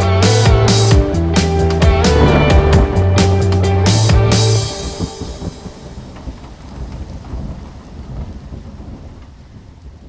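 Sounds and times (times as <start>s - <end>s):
rain hiss: 1.6s - 10.0s
rolling thunder: 1.7s - 10.0s.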